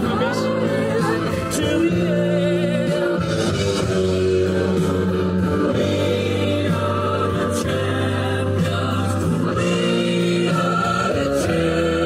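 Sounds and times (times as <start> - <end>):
voices singing in chords: 0.0 - 12.0.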